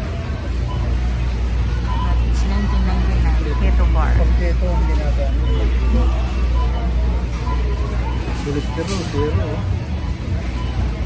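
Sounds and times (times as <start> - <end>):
shoppers' voices: 0.0 - 11.0.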